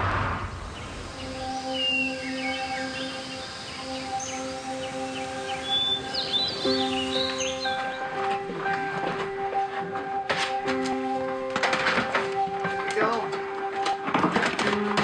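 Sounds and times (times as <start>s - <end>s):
music of sustained notes: 0.4s - 15.0s
small birds chirping: 0.6s - 8.4s.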